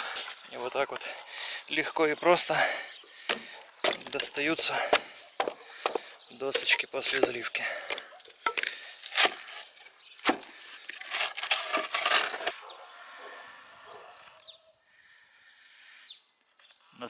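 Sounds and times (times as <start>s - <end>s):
wood scraping on concrete: 2.4s - 12.8s
wood knocks and cracks: 3.2s - 12.6s.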